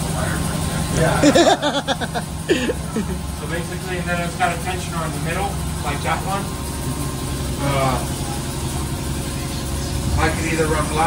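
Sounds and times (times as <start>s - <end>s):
low mechanical machine hum: 0.0s - 11.0s.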